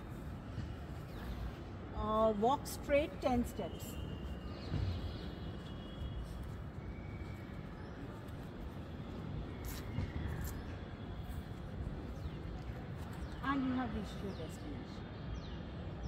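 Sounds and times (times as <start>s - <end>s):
distant traffic rumble: 0.0s - 16.0s.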